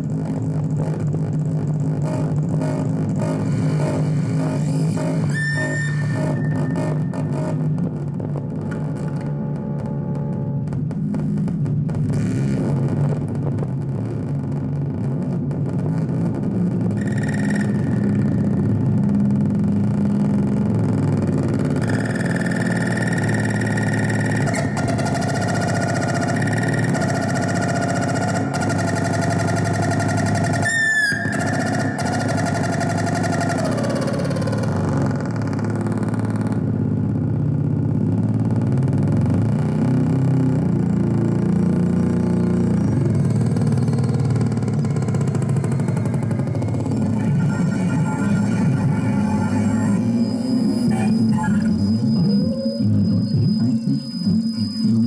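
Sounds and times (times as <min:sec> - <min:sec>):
dense low synthesizer drone: 0:00.0 - 0:55.0.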